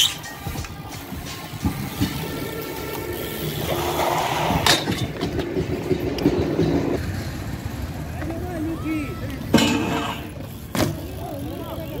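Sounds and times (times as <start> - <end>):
bike landing on concrete clack: 0.0 - 2.5, 3.7 - 7.0, 9.5 - 11.1.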